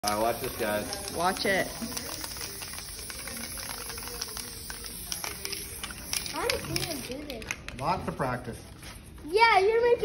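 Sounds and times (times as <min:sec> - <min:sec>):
spray paint can hissing: 0:00.0 - 0:07.7
faint background voices: 0:00.2 - 0:07.4.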